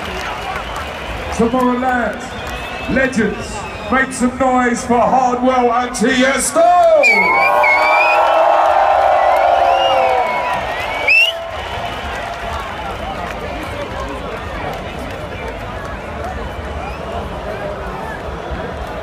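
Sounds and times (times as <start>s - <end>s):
crowd chattering: 0.0s - 8.0s, 10.0s - 19.0s
crowd cheering and shouting: 0.0s - 19.0s
sharp rising whistle: 7.0s - 8.3s, 9.7s - 11.4s.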